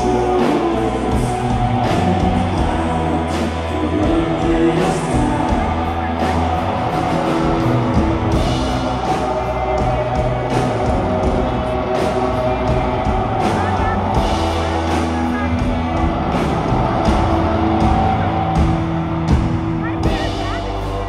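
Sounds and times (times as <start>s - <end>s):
drums steady beat: 0.0s - 21.0s
electric guitars sustained chords: 0.0s - 21.0s.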